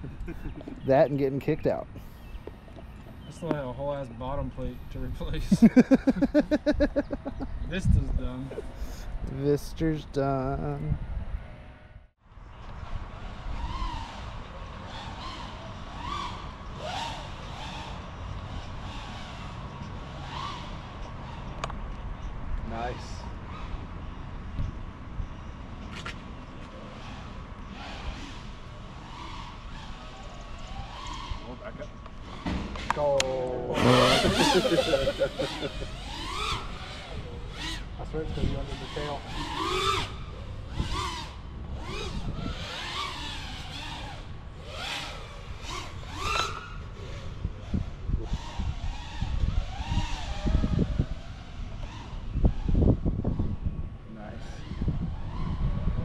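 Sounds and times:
drone motors whining: 12.4 - 56.0.

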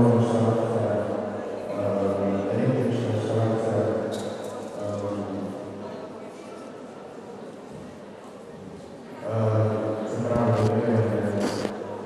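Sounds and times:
beatbox clicks and hisses: 11.4 - 11.8.

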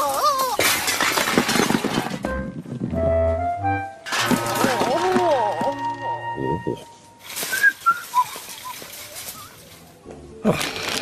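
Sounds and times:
tin cans clattering crash: 0.0 - 2.4, 4.1 - 6.2, 7.2 - 9.9.

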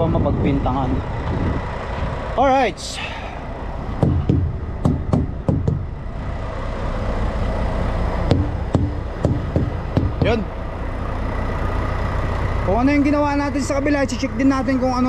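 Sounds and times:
hammer knocking on truck tires: 4.0 - 6.0, 8.3 - 10.4.

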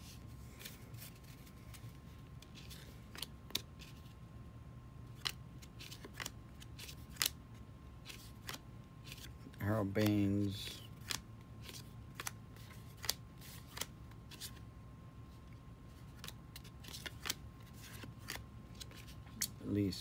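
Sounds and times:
cardboard cards sliding and clicking: 16.0 - 19.5.

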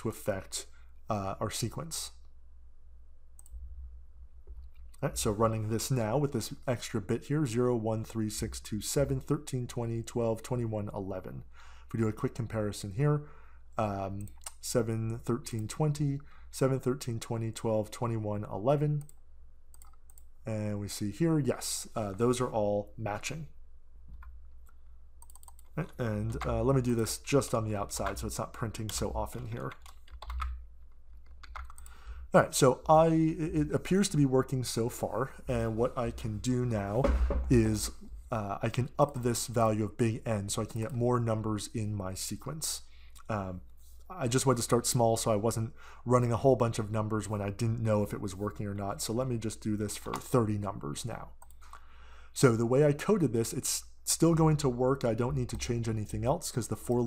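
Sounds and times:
faint low hum: 0.0 - 57.0
computer mouse click: 3.4 - 3.6, 19.0 - 20.3, 24.1 - 26.5, 31.2 - 32.0.

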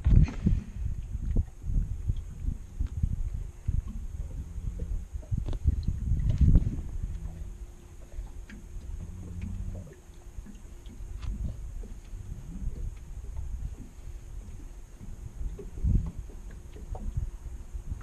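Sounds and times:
wind rumble on microphone: 0.0 - 18.0
gear knocking in aluminum boat: 1.2 - 18.0.

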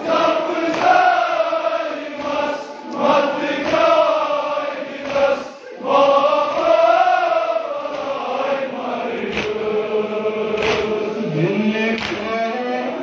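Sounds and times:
men chanting a lament: 0.0 - 13.0
sharp slaps or claps: 0.6 - 1.2, 2.2 - 2.6, 3.6 - 4.0, 4.9 - 5.4, 7.9 - 8.2, 9.2 - 9.8, 10.5 - 11.1, 11.9 - 12.5.

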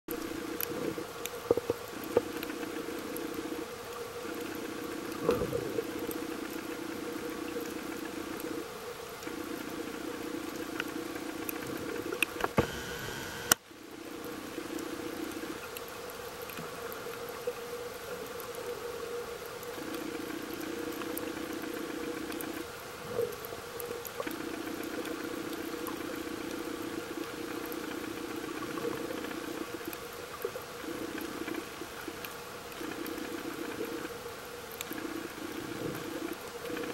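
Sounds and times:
faint clicks: 0.1 - 9.7, 10.5 - 13.6, 14.7 - 36.9
motor hum underwater: 0.1 - 36.9.

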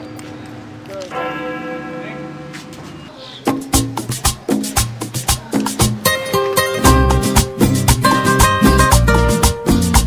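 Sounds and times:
church bell ringing: 1.0 - 3.4.

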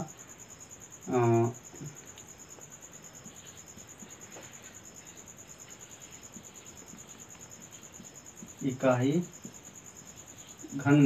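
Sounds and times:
cricket trill: 0.0 - 11.0.

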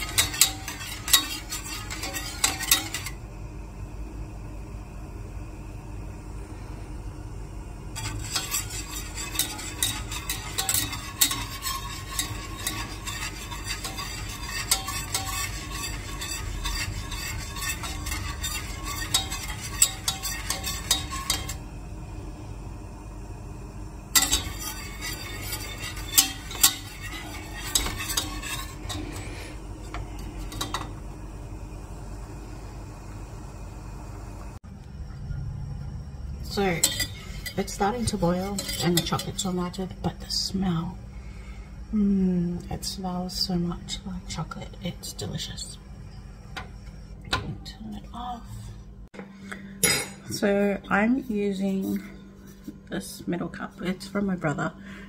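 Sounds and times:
whisk scraping a metal pan: 0.0 - 3.2, 8.0 - 21.6, 24.1 - 31.0, 36.5 - 40.5.

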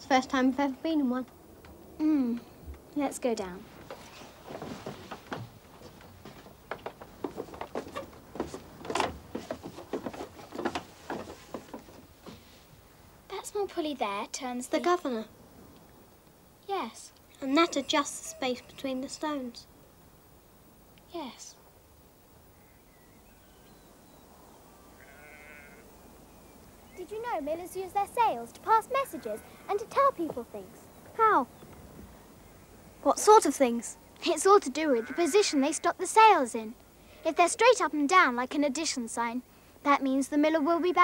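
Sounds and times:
footsteps on wooden steps: 3.8 - 12.7
sheep bleat: 25.0 - 25.8, 35.0 - 35.6.

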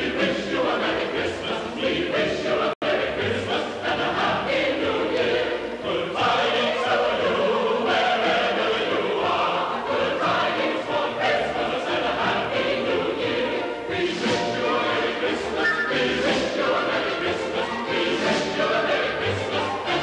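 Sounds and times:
choir singing: 0.0 - 20.0.

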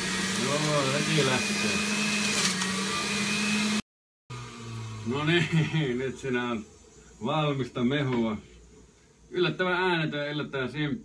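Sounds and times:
juicer motor whining: 0.0 - 5.4.

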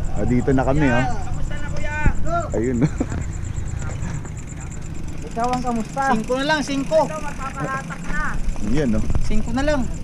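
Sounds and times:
wind and road noise: 0.0 - 10.0.

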